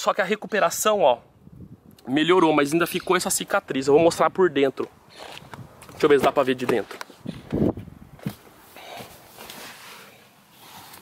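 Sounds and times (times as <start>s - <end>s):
handling noises: 5.1s - 11.0s.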